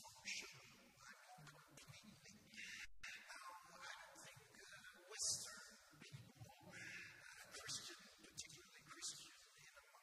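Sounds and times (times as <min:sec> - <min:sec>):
man speaking quietly into microphone: 0:00.0 - 0:10.0.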